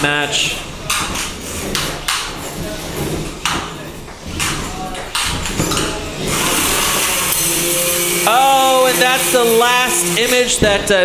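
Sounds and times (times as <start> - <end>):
robots clanking and scraping: 0.3 - 11.0.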